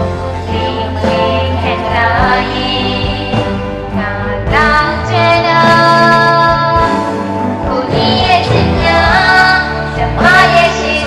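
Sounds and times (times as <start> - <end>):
backing music: 0.0 - 11.0
person singing pop ballad: 0.0 - 11.0.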